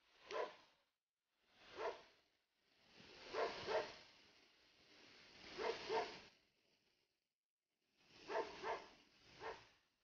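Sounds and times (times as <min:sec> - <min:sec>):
dog barking faintly: 0:00.3 - 0:00.6, 0:03.3 - 0:04.0, 0:05.6 - 0:06.2, 0:08.3 - 0:09.7.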